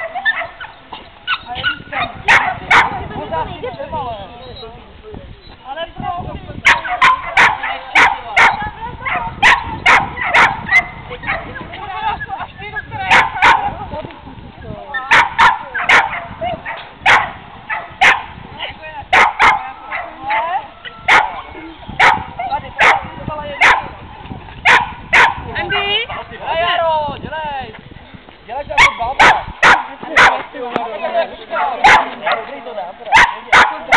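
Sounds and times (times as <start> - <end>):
dog barking: 0.0 - 3.1, 6.6 - 11.6, 13.0 - 13.8, 15.1 - 18.3, 19.1 - 23.9, 24.6 - 25.4, 28.8 - 30.4, 31.6 - 32.5, 33.1 - 33.9.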